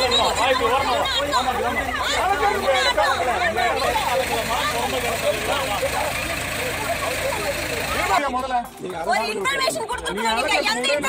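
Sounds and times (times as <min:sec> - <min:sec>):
diesel engine idling: 0:00.0 - 0:08.8
people talking: 0:00.0 - 0:11.0.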